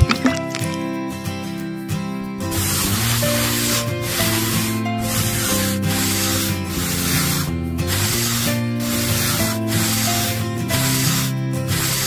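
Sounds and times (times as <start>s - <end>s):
trowel scraping wet cement: 0.0s - 0.9s, 2.4s - 12.0s
background music: 0.0s - 12.0s.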